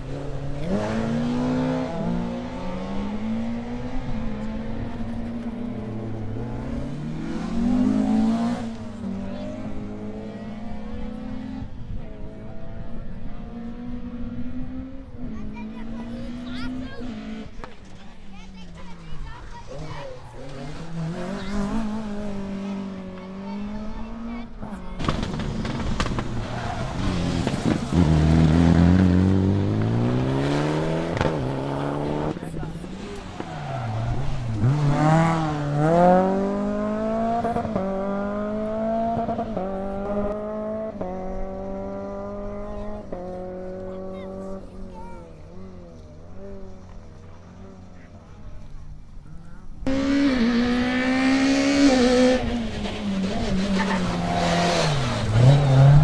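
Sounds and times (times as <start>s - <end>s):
rally car engines revving: 0.0s - 56.0s
car engine climbing through gears: 19.6s - 56.0s.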